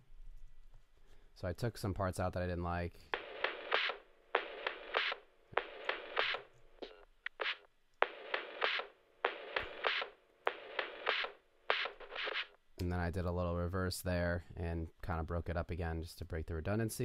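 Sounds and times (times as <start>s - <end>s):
lo-fi drum loop: 3.2s - 12.6s.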